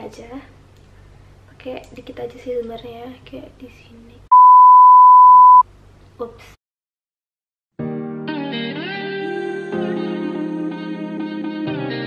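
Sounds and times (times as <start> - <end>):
censor bleep: 4.3 - 5.6.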